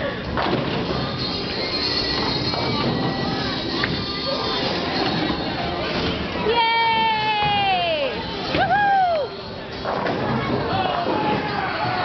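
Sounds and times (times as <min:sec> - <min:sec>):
bowling balls rolling: 0:00.3 - 0:12.0.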